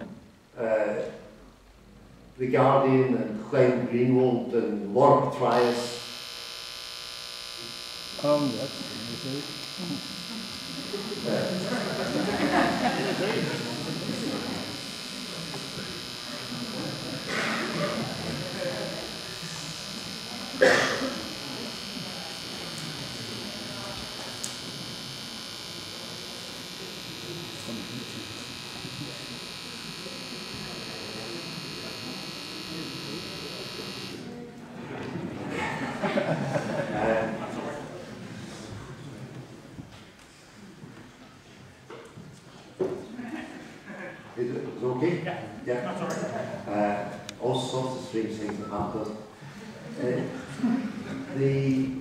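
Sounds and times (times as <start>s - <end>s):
steady electrical buzz: 0.0s - 38.0s
short noisy burst: 5.5s - 34.3s
faint indistinct speech: 7.6s - 36.0s.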